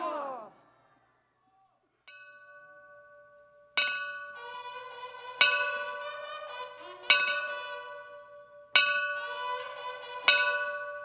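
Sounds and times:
bell strike ringing: 2.1s - 4.4s, 5.4s - 6.0s, 7.1s - 7.7s, 8.7s - 9.4s, 10.3s - 11.0s.

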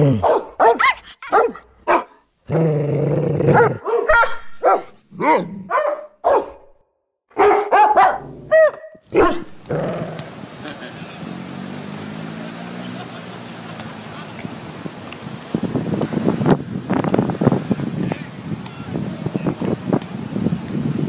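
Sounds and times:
dogs barking and yelping: 0.1s - 2.2s, 3.4s - 6.7s, 7.4s - 10.2s.

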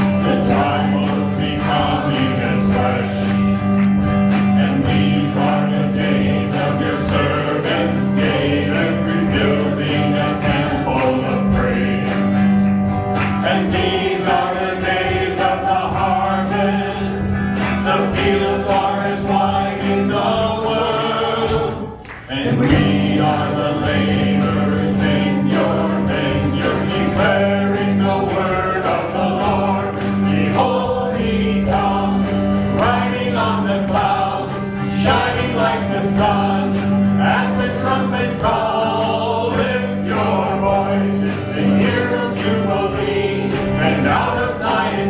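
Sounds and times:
group singing a hymn: 0.0s - 45.0s
instrumental backing: 0.0s - 45.0s.

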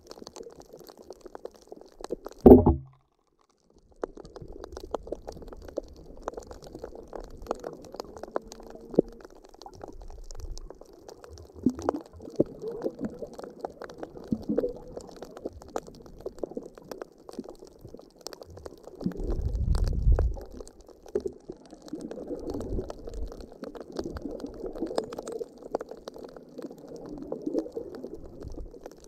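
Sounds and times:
water gurgling and sloshing: 2.3s - 3.0s.

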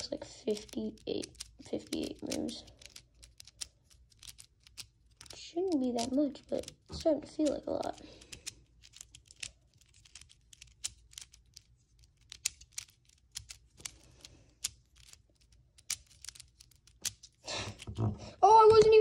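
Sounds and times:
plastic clicks of puzzle cube: 0.2s - 18.1s.

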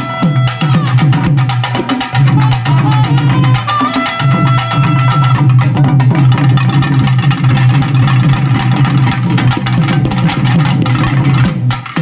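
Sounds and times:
barrel drum beaten with stick: 0.0s - 12.0s.

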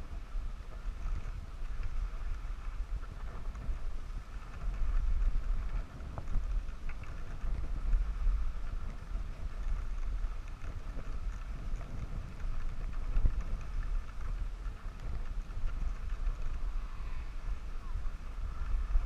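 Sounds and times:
skis sliding over snow: 0.0s - 19.0s
wind buffeting microphone: 0.0s - 19.0s.

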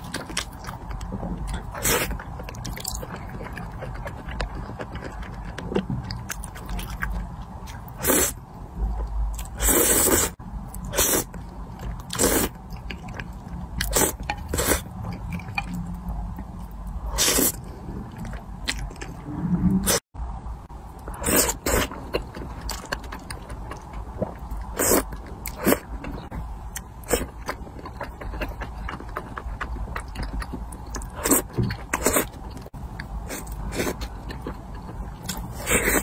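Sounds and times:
wet chewing clicks: 0.0s - 7.9s, 21.1s - 36.0s
person slurping noodles: 9.6s - 11.3s.

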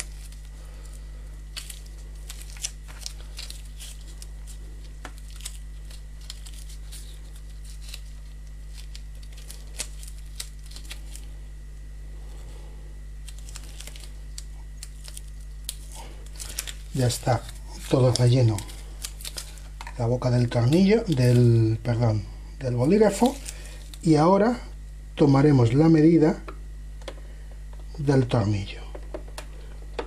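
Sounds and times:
steady low hum: 0.0s - 30.0s
gloved hands handling plastic pen tube: 16.2s - 21.4s.

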